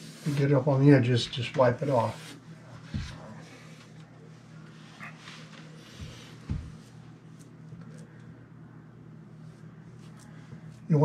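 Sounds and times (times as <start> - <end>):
paintbrush strokes on door: 0.0 - 3.8
low steady hum: 0.0 - 11.0.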